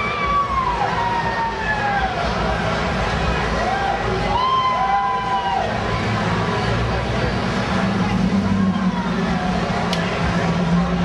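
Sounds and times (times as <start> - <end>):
crowd chatter: 0.0 - 11.0
low engine hum: 0.0 - 11.0
steady traffic din: 0.0 - 11.0.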